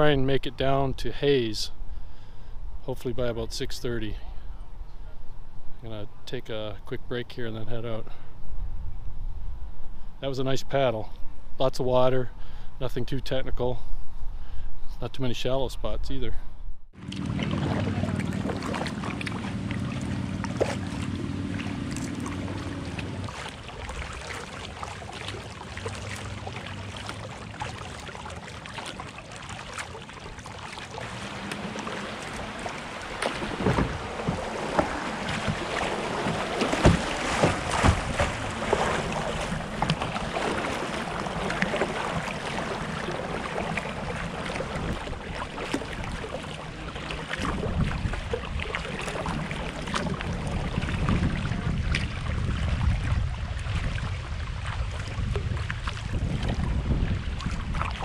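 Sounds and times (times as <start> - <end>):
paddle splashes: 16.9 - 58.0
wind on microphone: 31.1 - 58.0.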